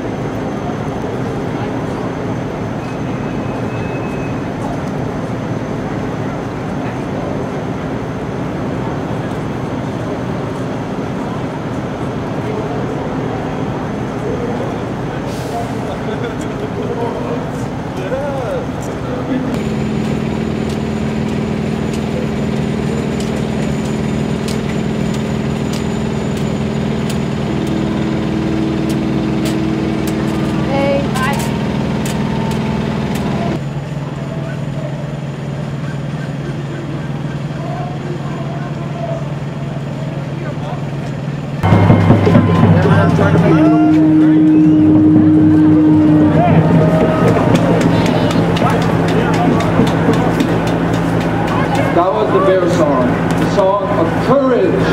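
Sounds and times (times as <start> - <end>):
traffic with idling trucks: 0.0 - 54.9
low drone of held tones: 41.6 - 54.9.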